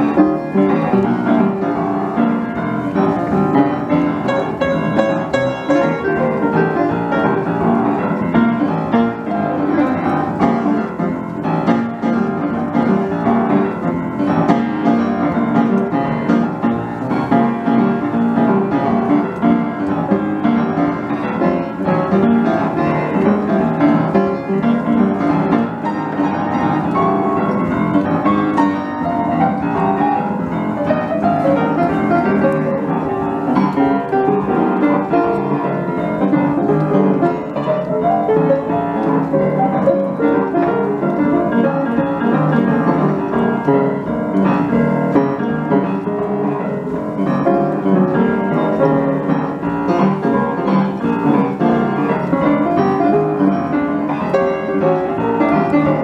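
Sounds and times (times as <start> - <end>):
piano playing fast notes: 0.0 - 56.0.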